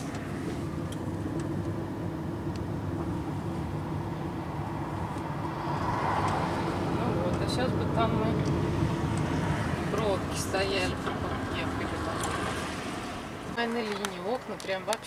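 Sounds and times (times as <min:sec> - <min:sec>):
car engine and tyre noise: 0:00.0 - 0:15.0.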